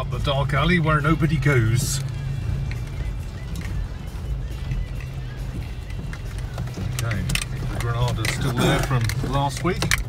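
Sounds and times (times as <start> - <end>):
car engine and road drone: 0.0 - 10.0
music playing quietly: 0.0 - 10.0.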